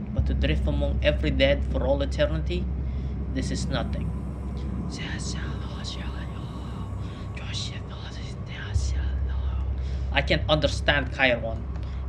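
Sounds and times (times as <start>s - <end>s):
steady low hum: 0.0s - 12.0s
person whispering: 3.3s - 11.7s.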